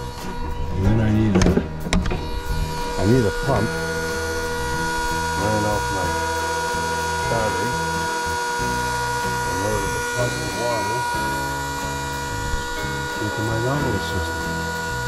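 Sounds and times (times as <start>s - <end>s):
electric water pump whining: 0.0s - 15.0s.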